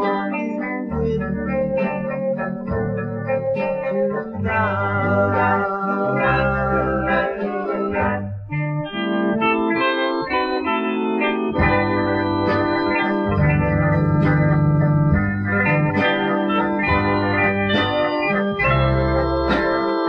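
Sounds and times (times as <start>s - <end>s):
doo-wop record guitar: 0.0s - 20.0s.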